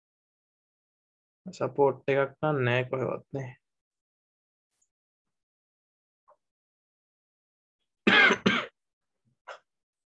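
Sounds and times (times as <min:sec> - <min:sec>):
person clearing throat: 0:08.1 - 0:08.8.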